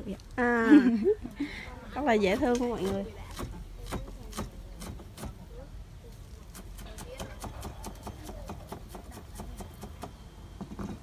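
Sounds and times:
knife chopping on wooden board: 2.8s - 5.4s, 6.5s - 10.1s.

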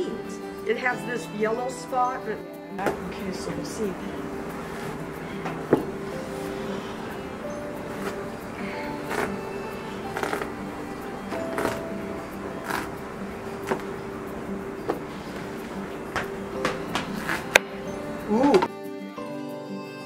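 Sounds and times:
background music with held tones: 0.0s - 20.0s.

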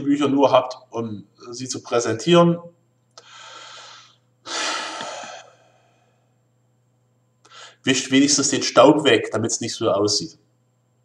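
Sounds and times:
man breathing: 3.1s - 6.5s, 7.4s - 7.8s.

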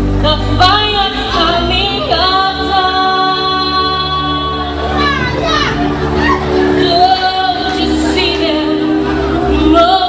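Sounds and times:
calypso music: 0.0s - 10.0s
woman singing: 0.0s - 10.0s.

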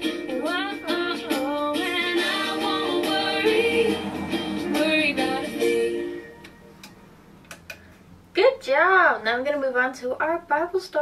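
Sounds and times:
song ending: 0.0s - 7.2s.

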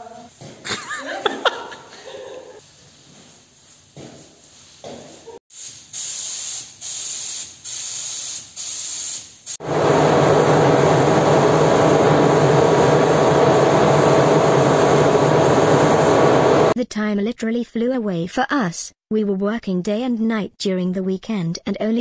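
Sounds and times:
paint spray gun hissing: 5.2s - 16.8s
mechanical hum of spraying rig: 9.6s - 16.8s.

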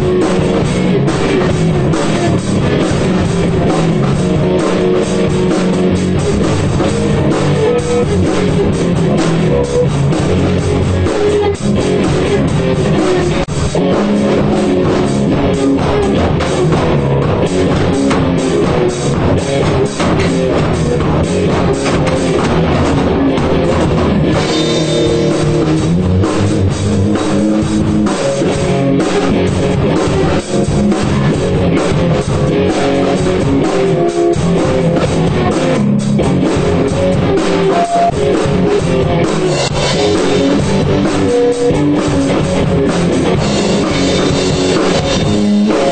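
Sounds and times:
punk rock band playing: 0.0s - 45.9s.

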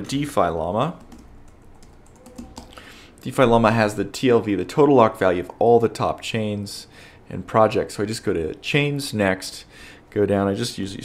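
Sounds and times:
computer keyboard typing: 1.0s - 2.8s.

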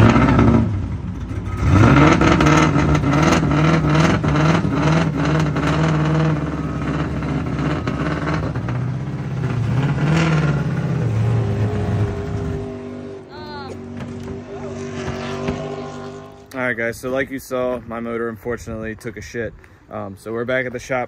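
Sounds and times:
car engine revving: 0.0s - 16.6s.

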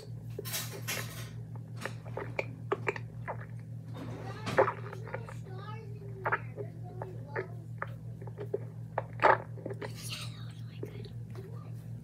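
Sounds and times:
low electrical hum: 0.0s - 12.0s
mouth clicks and smacks: 1.6s - 3.7s, 6.1s - 11.4s
child whispering: 9.8s - 11.9s.

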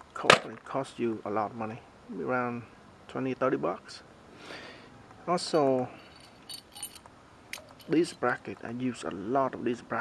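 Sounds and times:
metal brackets clinking: 6.0s - 8.4s.

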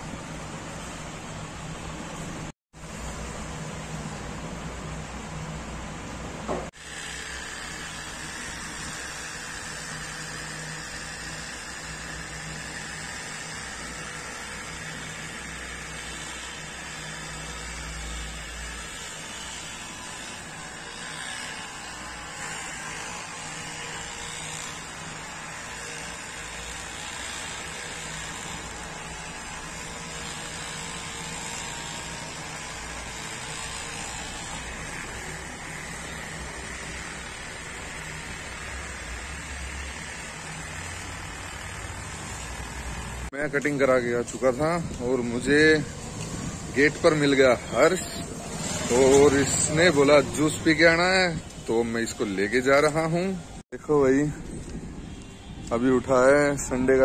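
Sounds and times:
electric hair clipper running: 6.8s - 43.3s, 44.4s - 53.3s.

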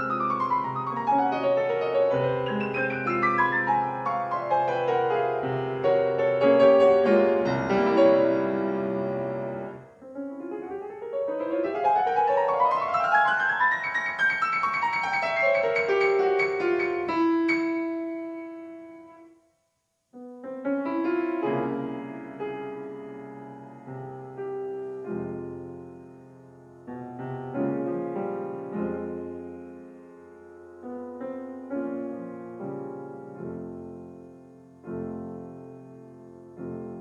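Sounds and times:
solo classical piano: 0.0s - 37.0s.

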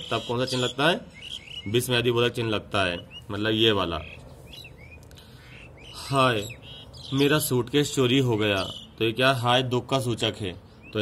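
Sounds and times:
bird chirps: 0.0s - 9.5s, 10.4s - 11.0s.

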